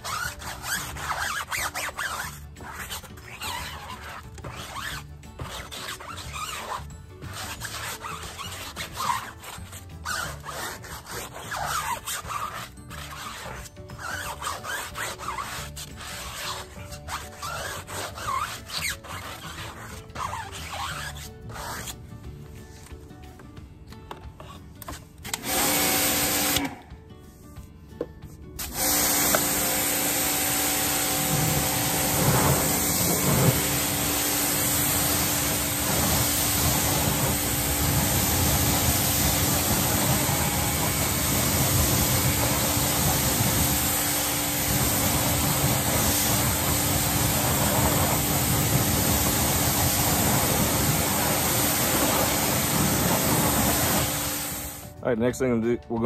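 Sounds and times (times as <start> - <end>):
pressure washer motor hum: 25.3 - 26.8, 28.6 - 54.8
water jet spraying: 25.4 - 26.7, 28.6 - 54.8.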